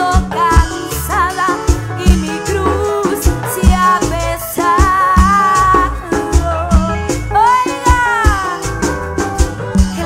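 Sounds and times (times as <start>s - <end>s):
woman singing: 0.0s - 9.0s, 9.6s - 10.0s
live band music: 0.0s - 10.0s.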